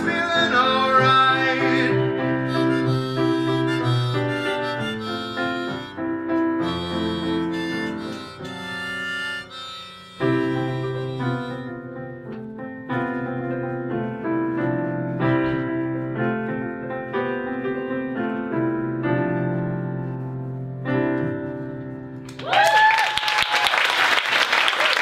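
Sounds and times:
piano chords: 0:00.0 - 0:22.4.

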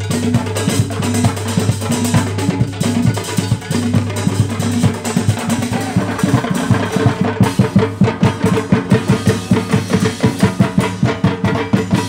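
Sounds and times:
drum band playing fast beat: 0:00.0 - 0:12.0.

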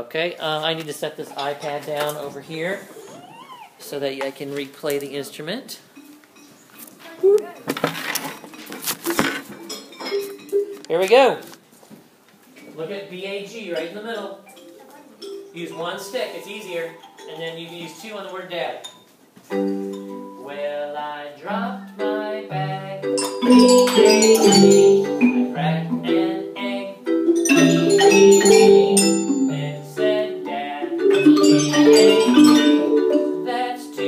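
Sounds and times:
mallets tapping xylophone bars: 0:09.7 - 0:11.0, 0:13.7 - 0:20.4, 0:23.0 - 0:26.2, 0:27.1 - 0:29.5, 0:31.0 - 0:33.5
melody with sustained notes: 0:23.1 - 0:25.6, 0:27.2 - 0:30.0, 0:31.0 - 0:33.5.

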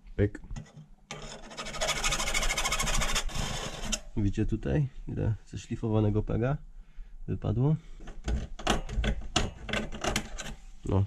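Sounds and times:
file rasping against steel: 0:01.1 - 0:04.1.

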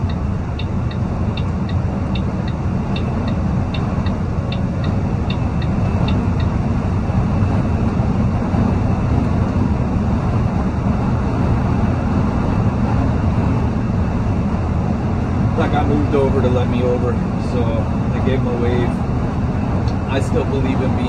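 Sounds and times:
turn signal clicking: 0:00.0 - 0:06.6
truck engine and tyres droning: 0:00.0 - 0:21.0.

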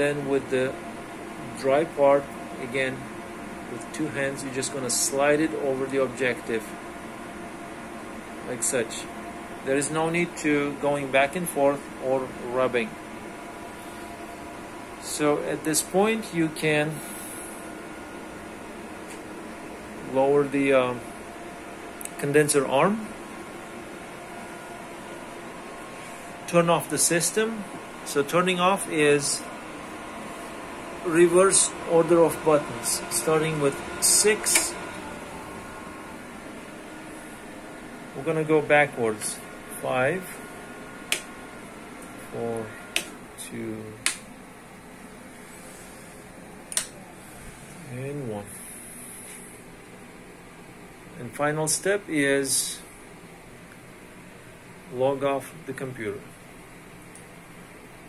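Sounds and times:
equipment hum: 0:00.0 - 0:58.0
power switch click: 0:34.5 - 0:34.8, 0:41.1 - 0:41.3, 0:44.0 - 0:44.3, 0:46.7 - 0:47.0.

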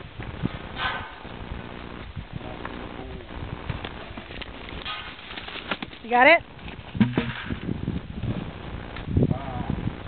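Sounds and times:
horse hooves on dirt: 0:00.0 - 0:09.2.

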